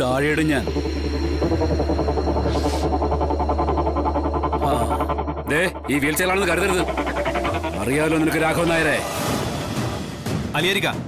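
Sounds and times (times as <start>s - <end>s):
fast pulsing pattern: 0.0s - 9.9s.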